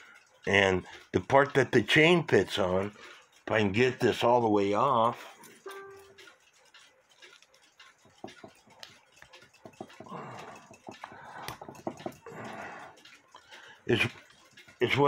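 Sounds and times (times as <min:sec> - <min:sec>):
metal clicks and scrapes: 0:00.0 - 0:15.0.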